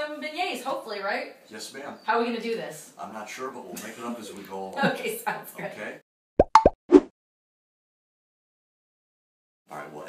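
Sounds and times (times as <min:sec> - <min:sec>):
cartoon pop sound effects: 0:06.4 - 0:07.1.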